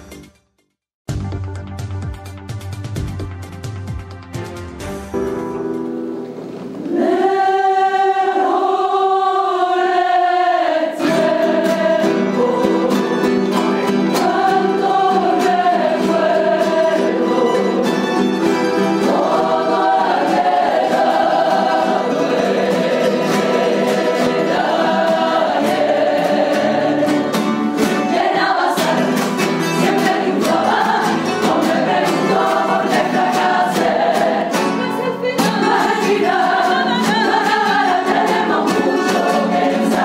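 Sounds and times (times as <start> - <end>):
mixed choir singing: 6.8 - 40.0
plucked and strummed guitars: 10.2 - 40.0.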